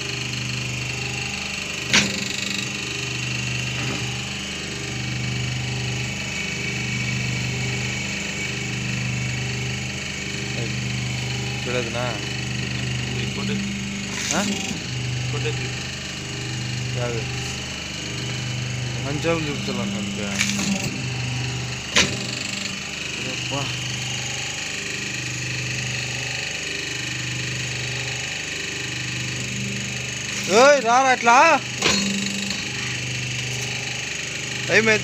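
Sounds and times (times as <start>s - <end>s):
paper plate machine humming: 0.0s - 35.0s.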